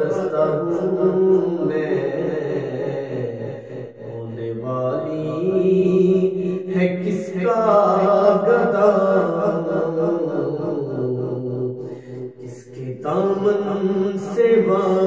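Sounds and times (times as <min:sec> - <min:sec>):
man singing solo devotional song: 0:00.0 - 0:15.0.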